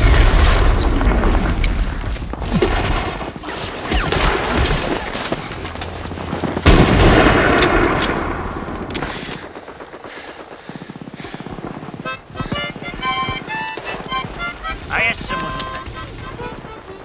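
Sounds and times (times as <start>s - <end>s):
rifle and machine-gun fire: 6.6s - 11.6s
harmonica tune: 12.0s - 17.0s.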